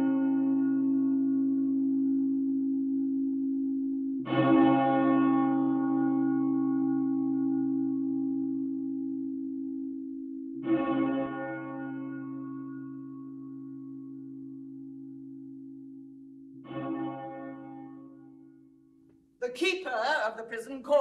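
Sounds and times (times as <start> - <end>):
deep bell tolling: 10.5 - 18.7.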